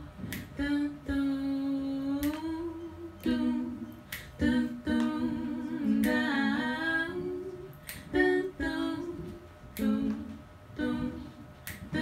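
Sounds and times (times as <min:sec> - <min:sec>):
woman humming a cappella: 0:00.0 - 0:12.0.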